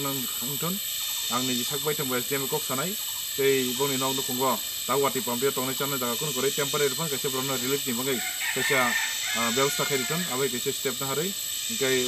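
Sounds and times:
man's voice: 0.0 - 12.0
rooster crowing: 7.9 - 10.8.

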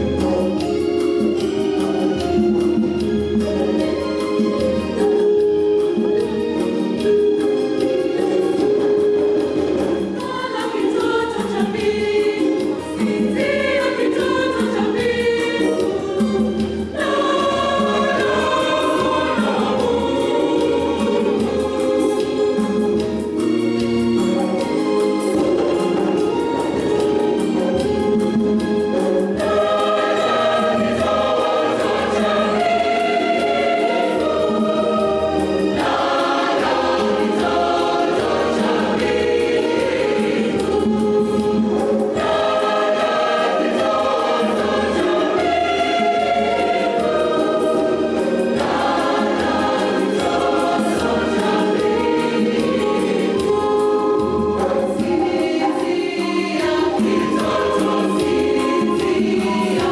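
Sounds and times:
choir singing a carol: 0.0 - 59.9.

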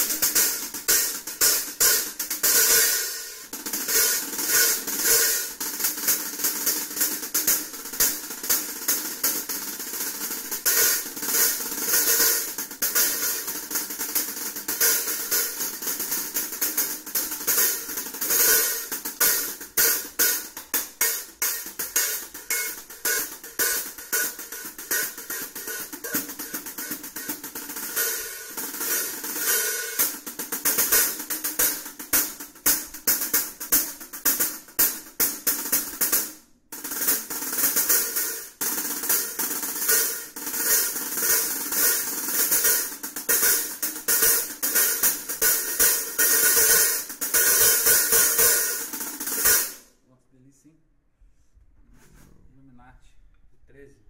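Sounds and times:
hi-hat played with drumsticks: 0.0 - 50.0.

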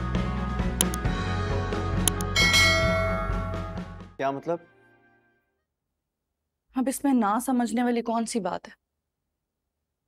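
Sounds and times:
background music: 0.0 - 5.6
bright bell chime: 2.4 - 3.8.

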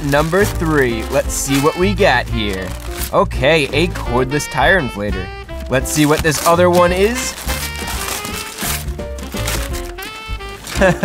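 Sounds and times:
wrapping paper crinkling: 0.0 - 4.5, 5.5 - 11.0
background music: 0.0 - 11.0
person laughing: 10.7 - 11.0.

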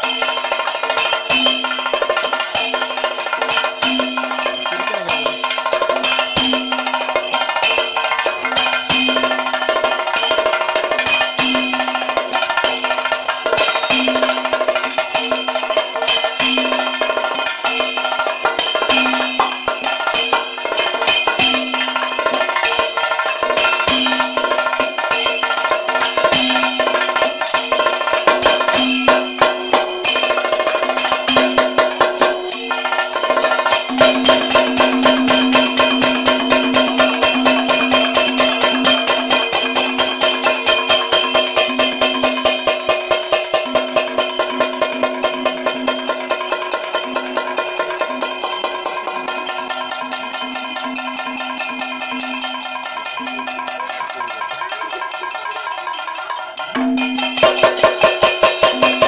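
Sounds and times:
drum struck with a stick: 0.0 - 55.3, 56.7 - 59.0
hand-played drum: 0.0 - 59.0
steady ringing tones: 0.0 - 59.0.

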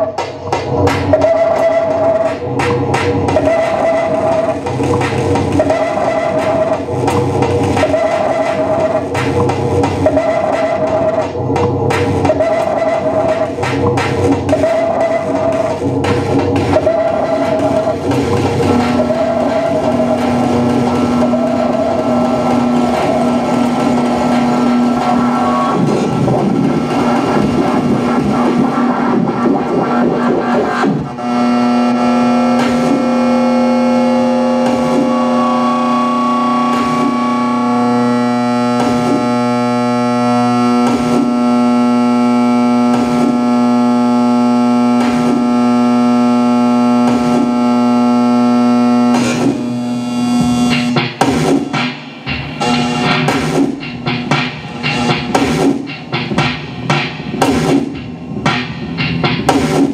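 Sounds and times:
low drone: 0.0 - 42.8
synthesizer noise music: 0.0 - 59.9.

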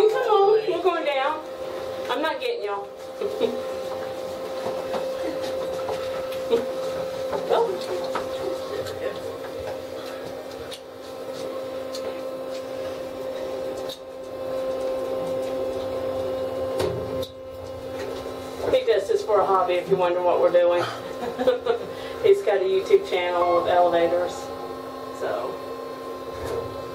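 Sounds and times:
elevator fan humming: 0.0 - 26.9.

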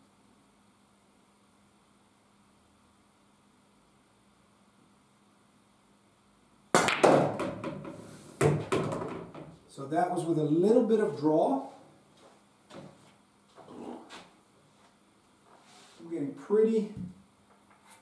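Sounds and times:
cue striking ball: 6.8 - 9.6
pool balls clattering: 6.8 - 9.6.

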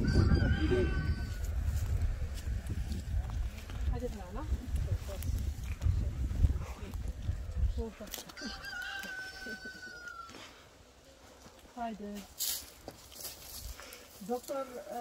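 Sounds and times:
wind buffeting microphone: 0.0 - 8.2.

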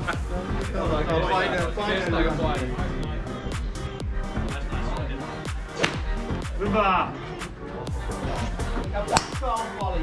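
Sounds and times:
background music with a beat: 0.0 - 10.0
golf club striking ball: 5.8 - 6.2, 9.1 - 9.5.

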